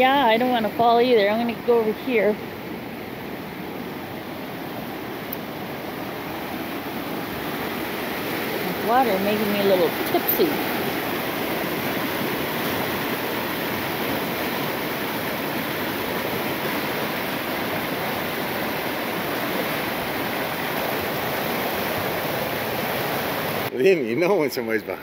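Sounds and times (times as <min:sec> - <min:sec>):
whitewater rushing over rocks: 0:02.7 - 0:23.7.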